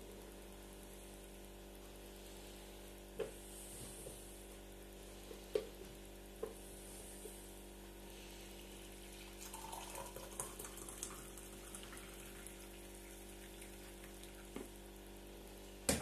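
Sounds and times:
background hum: 0:00.0 - 0:16.0
coffee pouring into mug: 0:08.8 - 0:14.7.

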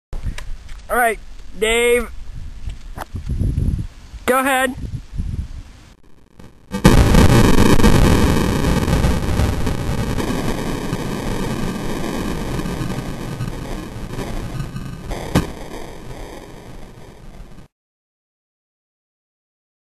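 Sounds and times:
sharp crack: 0:06.4 - 0:17.7
slowed shotgun blast roar: 0:06.7 - 0:17.6.

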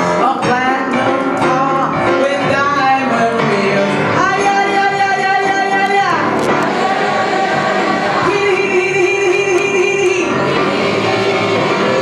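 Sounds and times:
grand piano accompaniment: 0:00.0 - 0:12.0
woman singing jazz-blues: 0:00.1 - 0:06.3.

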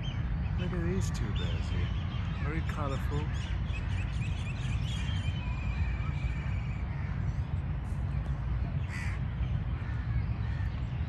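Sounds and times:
steady low rumble: 0:00.0 - 0:11.0
harsh bird caw: 0:08.8 - 0:09.2.

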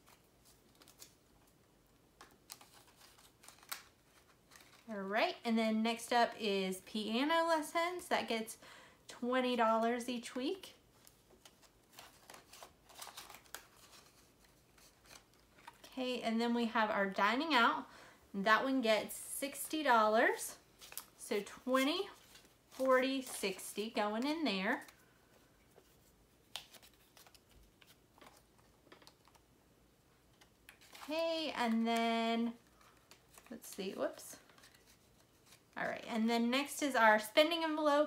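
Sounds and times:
paper bills and plastic rustling: 0:00.0 - 0:01.6, 0:02.2 - 0:04.9, 0:10.9 - 0:16.2, 0:20.5 - 0:29.4, 0:30.3 - 0:36.0.

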